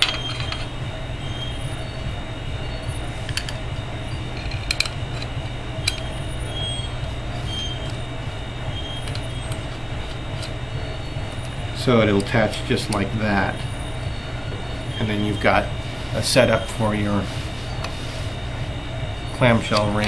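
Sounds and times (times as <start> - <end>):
screws squeaking: 0.0 - 1.7, 3.3 - 8.1, 19.4 - 20.0
steady low hum: 0.0 - 20.0.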